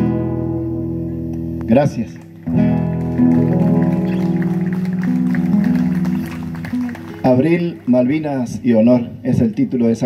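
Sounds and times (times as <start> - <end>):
acoustic guitars playing chords: 0.0 - 9.4.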